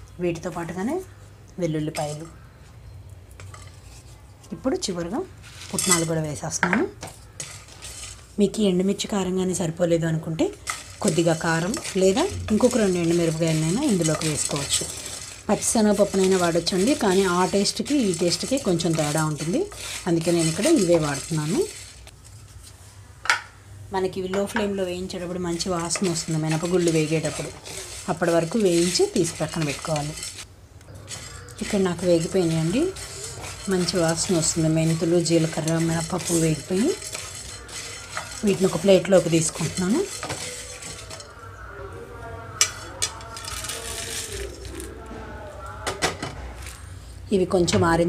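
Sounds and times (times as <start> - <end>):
wooden spatula scraping pan: 3.4 - 8.7, 10.3 - 22.8, 25.0 - 41.4, 42.6 - 44.9
metal cookware clinking: 5.6 - 8.6, 10.3 - 22.0, 24.3 - 41.4, 42.6 - 44.7
rattle of grains: 7.4 - 8.4, 10.5 - 22.1, 25.5 - 30.4, 31.0 - 41.3, 42.6 - 44.9.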